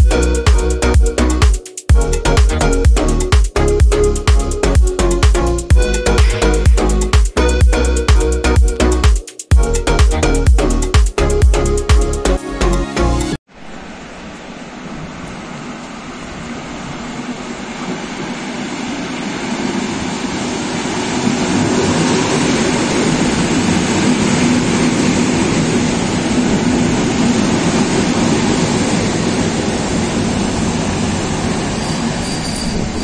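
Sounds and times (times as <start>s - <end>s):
train wheels rumbling: 13.6s - 33.0s
train brakes squealing: 30.2s - 33.0s.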